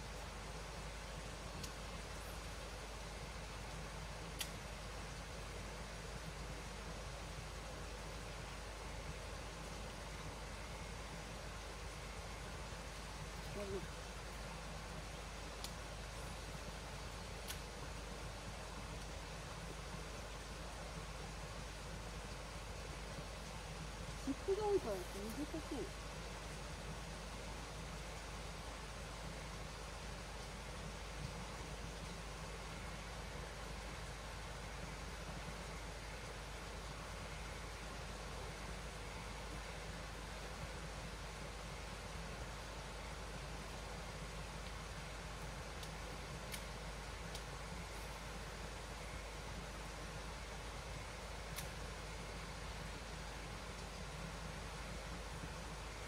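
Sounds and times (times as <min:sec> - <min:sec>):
running water in a stream: 0:00.0 - 0:56.0
faint clicks: 0:01.6 - 0:01.8, 0:04.4 - 0:04.6.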